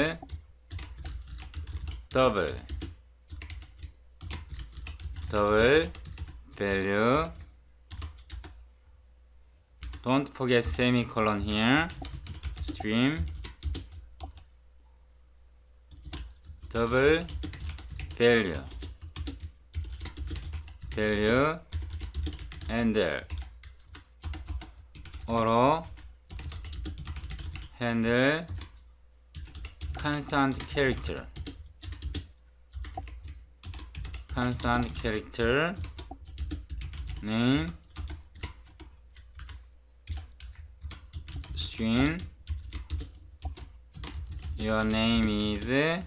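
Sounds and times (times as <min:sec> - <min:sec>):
typing on computer keyboard: 0:00.0 - 0:08.6, 0:09.8 - 0:10.0, 0:11.5 - 0:14.5, 0:15.9 - 0:27.7, 0:28.5 - 0:46.0.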